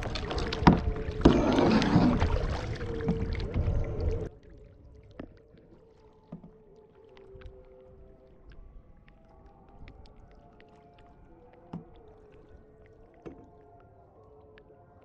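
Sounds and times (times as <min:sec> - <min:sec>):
water lapping and dripping: 0:00.0 - 0:15.0.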